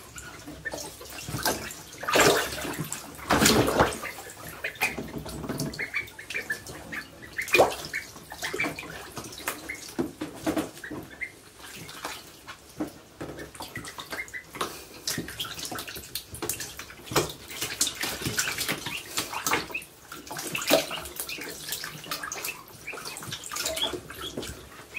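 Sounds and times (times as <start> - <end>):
ducklings splashing in water: 0.0 - 24.9
duckling peeps: 0.1 - 12.3, 13.2 - 24.9.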